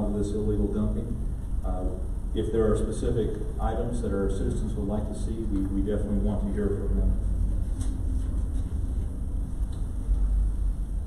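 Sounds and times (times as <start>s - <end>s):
low room noise rumble: 0.0s - 11.0s.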